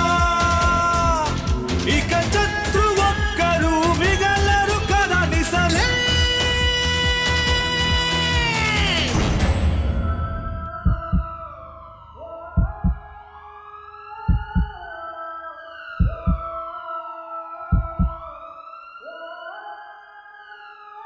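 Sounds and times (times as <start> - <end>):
siren-like wail: 10.0 - 21.0
low heartbeat-like thumps: 10.6 - 11.5, 12.4 - 13.2, 14.3 - 14.8, 16.0 - 16.5, 17.7 - 18.3.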